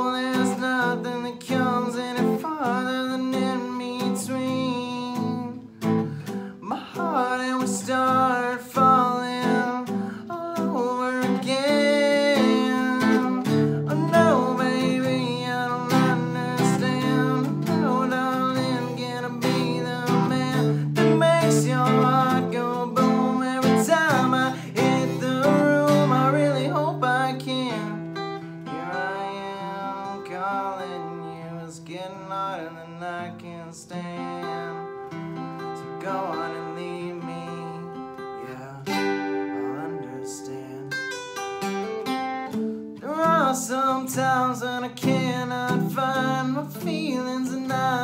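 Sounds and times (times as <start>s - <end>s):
man singing: 0.0s - 41.2s, 42.9s - 48.0s
acoustic guitar strumming chords: 0.0s - 48.0s.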